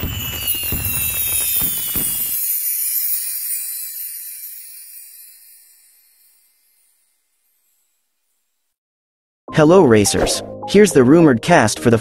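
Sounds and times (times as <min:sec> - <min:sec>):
firework-like crackle and rumble: 0:00.0 - 0:03.2
high glittering shimmer: 0:00.0 - 0:08.4.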